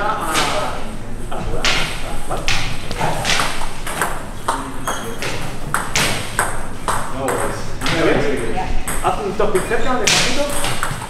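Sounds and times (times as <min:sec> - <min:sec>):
table tennis balls clicking: 0:01.6 - 0:11.0.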